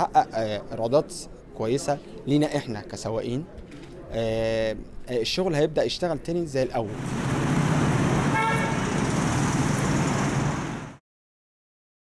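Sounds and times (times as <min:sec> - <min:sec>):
rumble of cars on road: 0:06.9 - 0:11.0.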